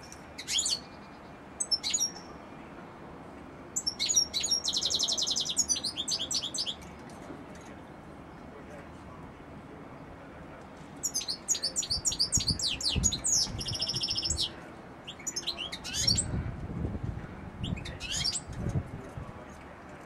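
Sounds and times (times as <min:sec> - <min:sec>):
goldfinch twittering song: 0:00.0 - 0:02.4, 0:03.8 - 0:06.8, 0:11.0 - 0:14.5, 0:15.1 - 0:16.3, 0:17.6 - 0:18.5.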